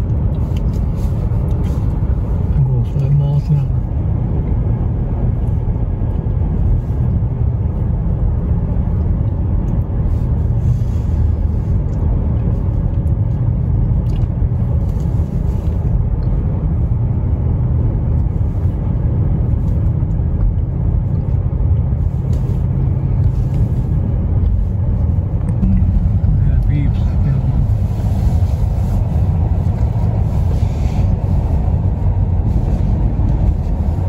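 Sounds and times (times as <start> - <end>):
car driving slowly: 0.0 - 34.0.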